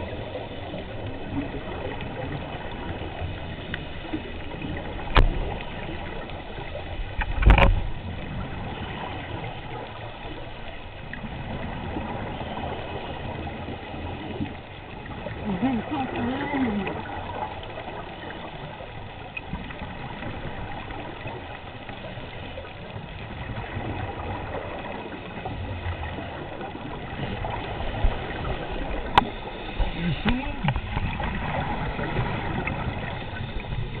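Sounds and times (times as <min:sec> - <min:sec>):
bubbles exhaled underwater: 0:00.0 - 0:34.0.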